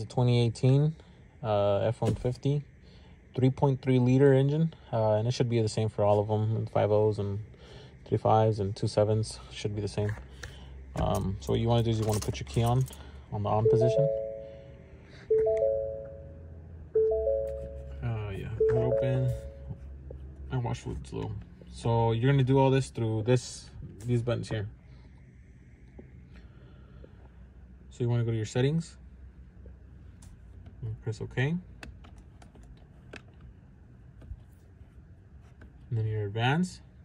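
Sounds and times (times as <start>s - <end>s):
faint low rumble: 0.0s - 31.8s
faint low hum: 0.0s - 37.0s
three-note warning chime: 13.6s - 19.8s
control buttons clicking: 15.3s - 16.2s.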